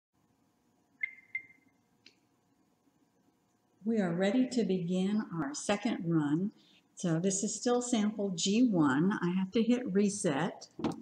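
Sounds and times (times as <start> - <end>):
faint steady hum: 0.2 - 11.0.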